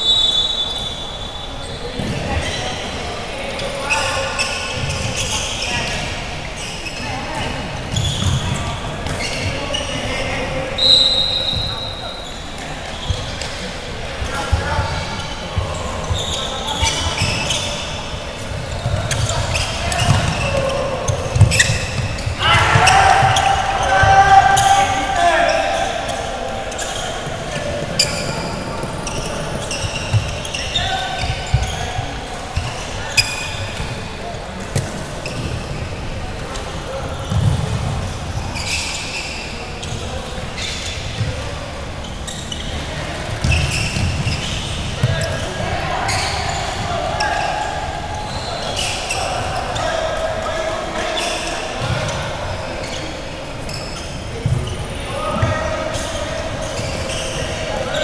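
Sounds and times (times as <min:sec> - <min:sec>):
players shouting: 0:07.0 - 0:34.2, 0:42.7 - 0:53.2.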